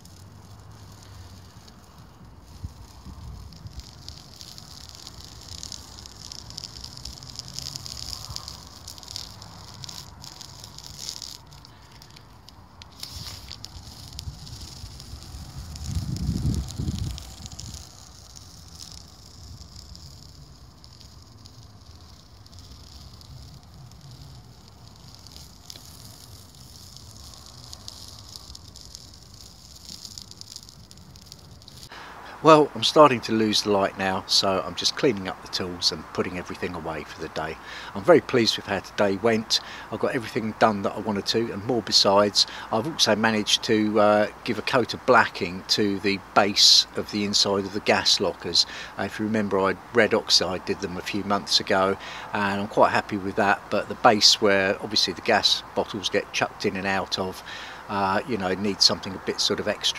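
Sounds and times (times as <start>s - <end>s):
tape peeling off crackling: 0.0s - 59.9s.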